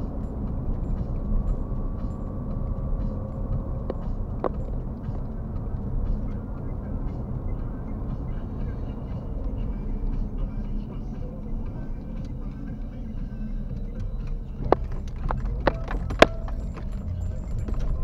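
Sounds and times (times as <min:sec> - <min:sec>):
road and engine rumble in car: 0:00.0 - 0:18.0.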